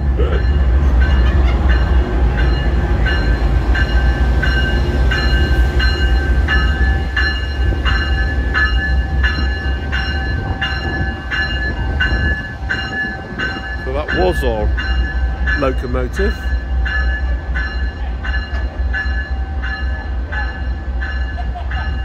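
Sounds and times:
diesel locomotive rumbling: 0.0s - 22.0s
locomotive bell ringing: 0.0s - 22.0s.

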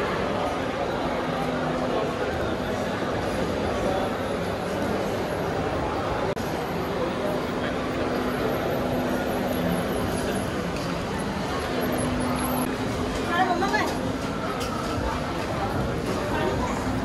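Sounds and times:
crowd hubbub: 0.0s - 17.0s.

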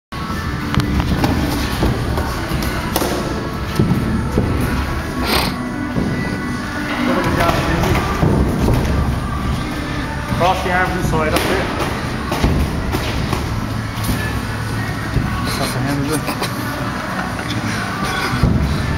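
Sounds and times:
background music: 0.2s - 18.9s.

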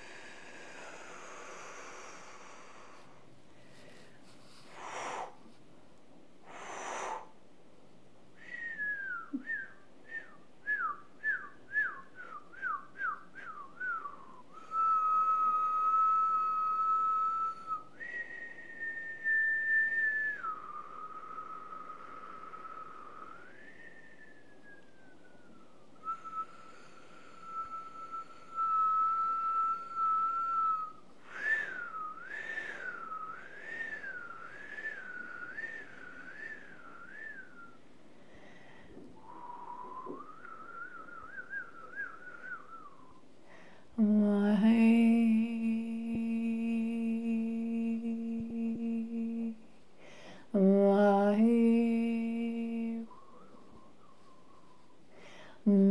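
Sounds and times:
woman whistling: 8.4s - 37.8s, 39.2s - 43.2s, 52.6s - 55.0s.

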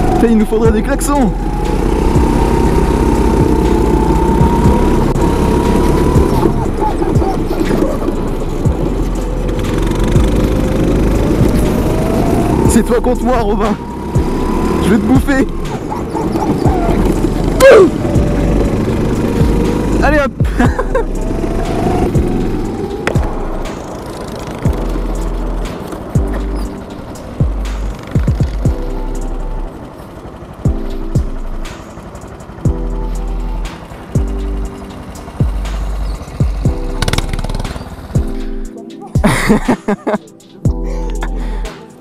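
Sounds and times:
chord stabs over bass pulse: 0.0s - 23.8s.

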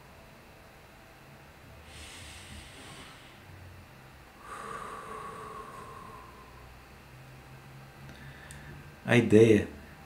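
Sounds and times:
man inhaling through nose: 1.8s - 3.6s, 4.4s - 6.6s, 8.1s - 8.8s
man exhaling through mouth: 1.9s - 3.5s, 4.4s - 6.6s.

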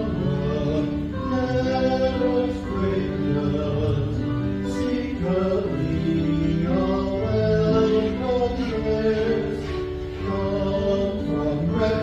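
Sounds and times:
church choir singing: 0.0s - 12.0s.

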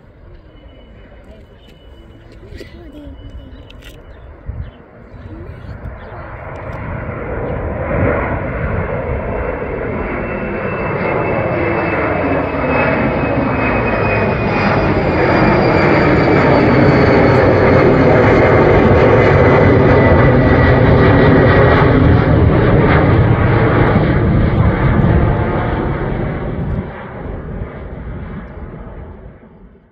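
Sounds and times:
jet airliner rumble: 0.0s - 29.9s.

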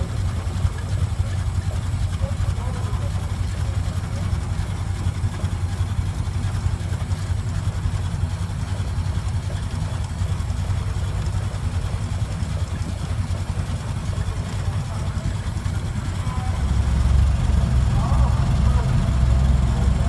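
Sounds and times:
car engine low rumble: 0.0s - 20.0s.

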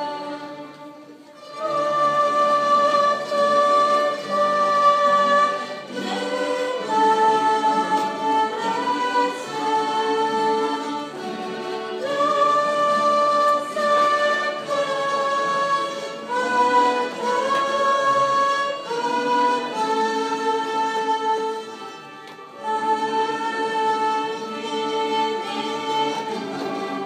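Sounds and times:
violins playing slow melody: 0.0s - 27.0s.

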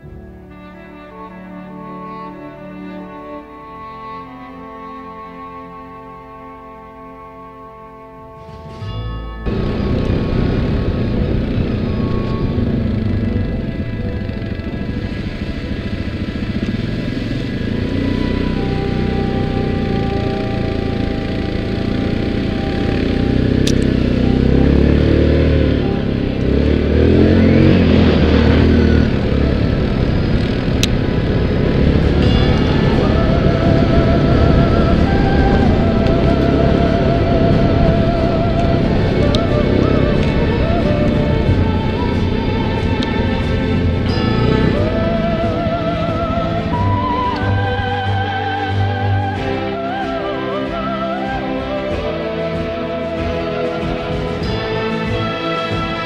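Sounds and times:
quad engine running under load: 0.0s - 56.0s
wind and trail noise: 8.3s - 56.0s.

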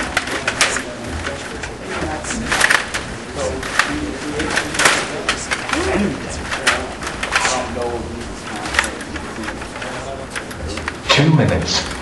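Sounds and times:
people talking: 0.0s - 12.0s
table hockey rods clacking: 0.0s - 12.0s.

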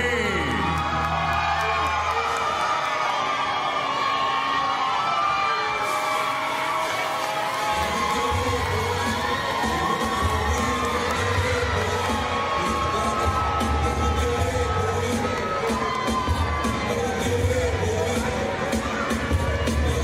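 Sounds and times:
arena crowd cheering and shouting: 0.0s - 20.0s
heavy bass: 7.8s - 20.0s.

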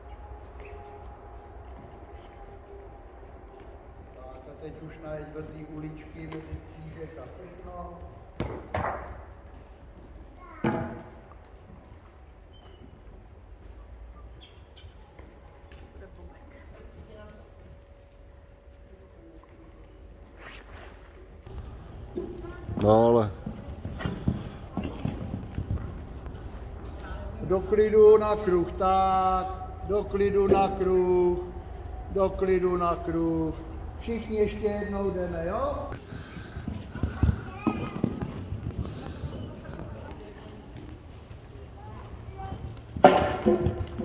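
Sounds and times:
horse hooves thudding on sand: 21.4s - 28.4s, 35.9s - 44.0s.

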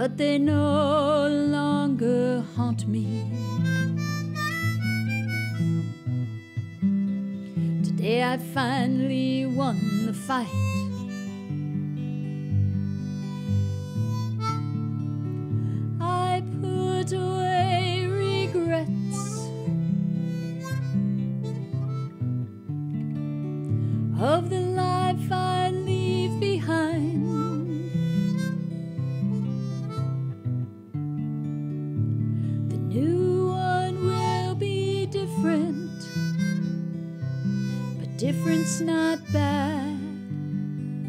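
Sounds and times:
person singing: 0.0s - 3.4s, 7.8s - 10.9s, 16.0s - 19.7s, 24.2s - 28.1s, 32.7s - 36.2s, 38.0s - 40.3s
harmonica melody: 0.0s - 31.6s, 32.3s - 41.0s
acoustic guitar: 0.0s - 41.0s.

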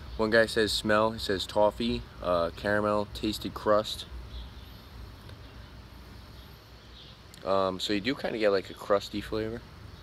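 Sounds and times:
faint low hum and hiss: 0.0s - 10.0s.

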